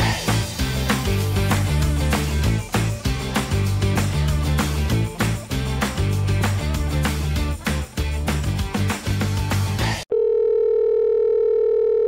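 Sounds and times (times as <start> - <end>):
telephone calling tone: 10.1 - 12.0.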